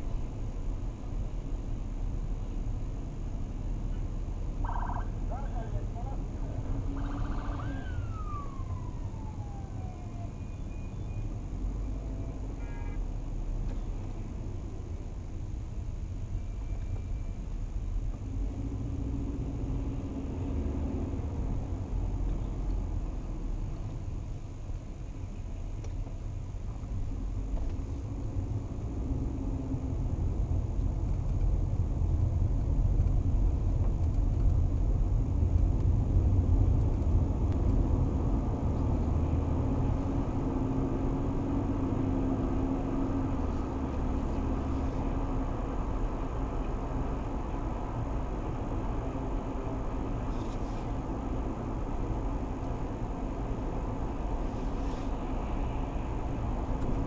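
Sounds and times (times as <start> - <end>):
car engine and tyre rumble: 0.0 - 57.0.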